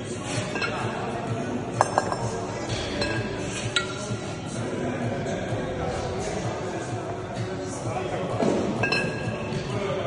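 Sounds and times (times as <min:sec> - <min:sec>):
background music with steady beat: 0:00.0 - 0:10.0
kettlebells clinking together: 0:01.8 - 0:04.1, 0:08.8 - 0:09.4.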